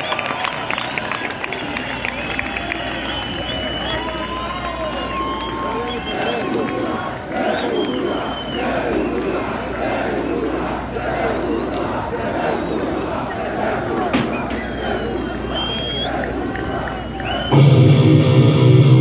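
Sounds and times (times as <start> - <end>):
crowd shouting and chanting: 0.0 - 19.0
low pa hum: 2.1 - 19.0.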